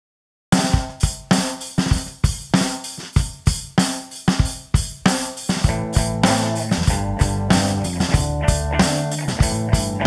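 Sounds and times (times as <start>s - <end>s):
rock drum kit beat: 0.5s - 10.0s.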